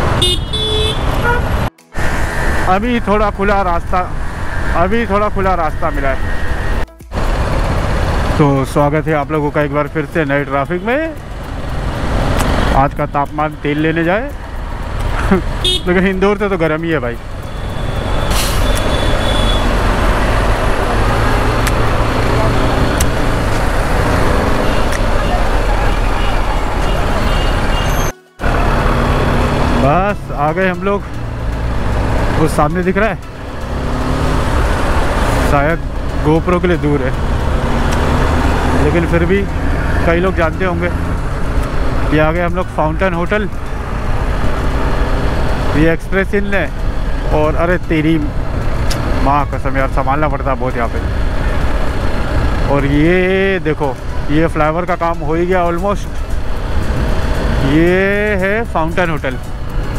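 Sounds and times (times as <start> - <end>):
road noise: 0.0 - 59.9.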